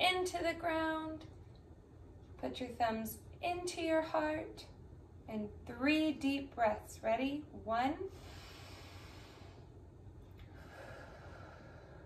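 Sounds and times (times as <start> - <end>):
slow deep breathing: 8.1 - 9.8, 10.4 - 12.0.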